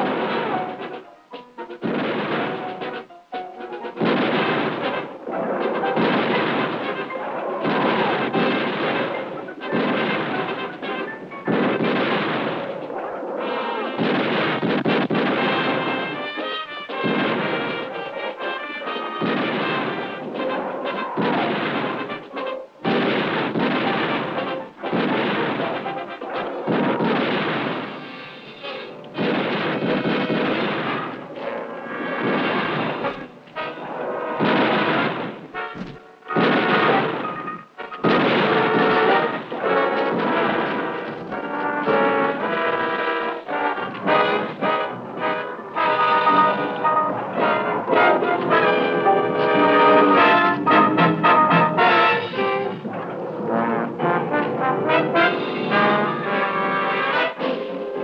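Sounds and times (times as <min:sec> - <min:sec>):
rifle and submachine gun fire: 0:01.8 - 0:03.0, 0:04.0 - 0:13.0, 0:14.0 - 0:16.2, 0:16.9 - 0:22.2, 0:22.8 - 0:28.6, 0:29.2 - 0:48.1
dramatic music score: 0:15.1 - 0:58.0.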